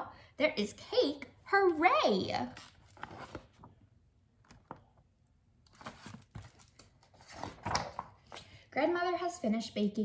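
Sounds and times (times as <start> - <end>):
page turning: 2.5 - 3.7, 5.7 - 8.1
paper rustling: 5.7 - 8.1.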